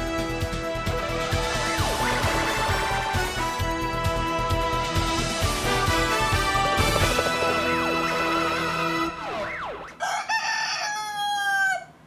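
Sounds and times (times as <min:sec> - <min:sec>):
rooster crowing: 0:10.0 - 0:12.0.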